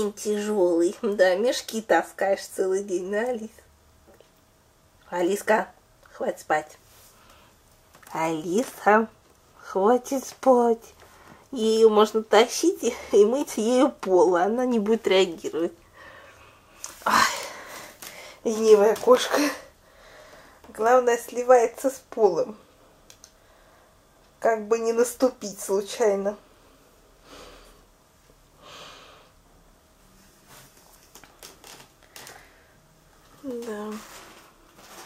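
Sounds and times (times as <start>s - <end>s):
faint rustles: 30.0s - 35.0s.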